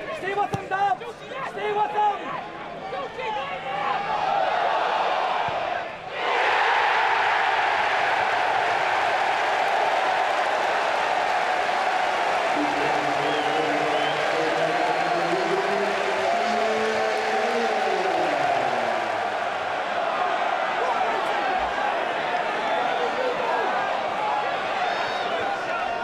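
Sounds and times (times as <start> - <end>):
stadium crowd cheering and applauding: 3.0 - 26.0
crowd chanting: 4.1 - 22.8.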